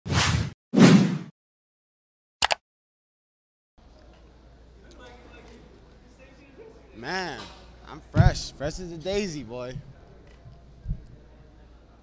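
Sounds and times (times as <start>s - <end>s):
whooshes: 0.1s - 1.3s.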